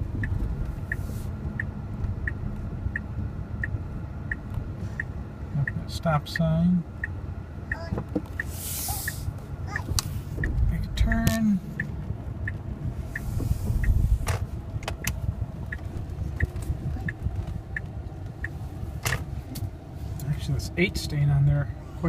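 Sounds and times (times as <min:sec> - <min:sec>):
low cabin rumble: 0:00.0 - 0:22.0
turn signal ticking: 0:00.0 - 0:22.0.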